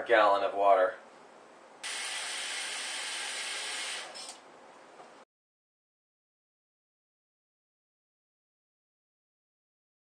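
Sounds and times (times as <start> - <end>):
faucet water running: 1.8 - 4.2.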